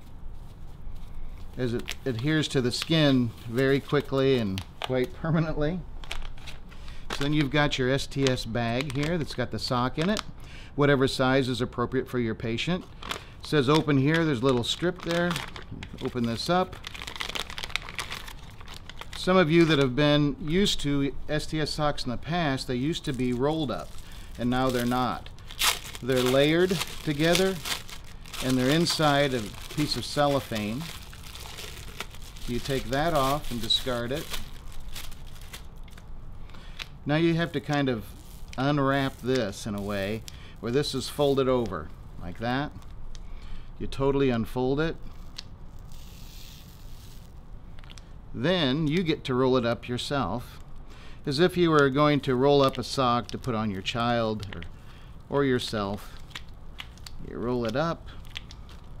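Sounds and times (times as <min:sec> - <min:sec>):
soft rustle of sock: 0:00.0 - 0:04.6
packaging pouch crinkling: 0:00.0 - 0:10.3, 0:12.8 - 0:41.8, 0:45.2 - 0:48.1, 0:51.6 - 0:59.0.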